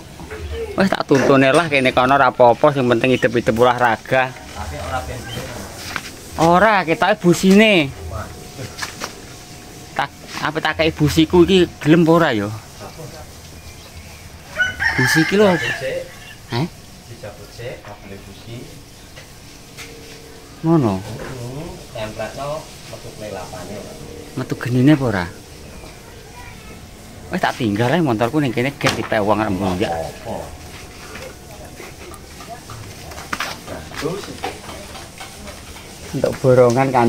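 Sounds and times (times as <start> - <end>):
rooster crowing: 14.4 - 16.5.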